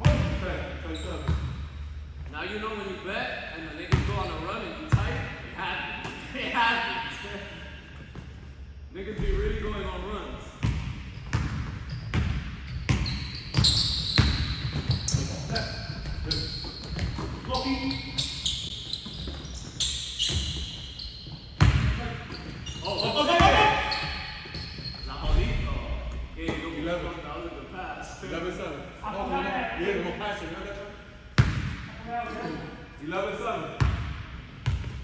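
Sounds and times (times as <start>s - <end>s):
shoe squeaks: 0.8s - 2.2s, 11.1s - 25.9s.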